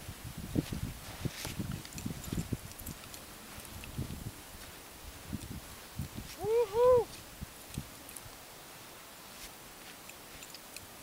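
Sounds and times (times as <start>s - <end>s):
footsteps crunching in snow: 0.4s - 7.4s, 9.2s - 10.5s
two-note voiced call: 6.4s - 7.1s.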